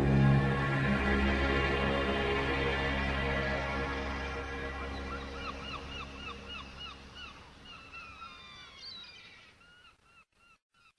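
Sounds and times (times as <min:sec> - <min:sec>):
seagull cries: 0:04.8 - 0:09.9.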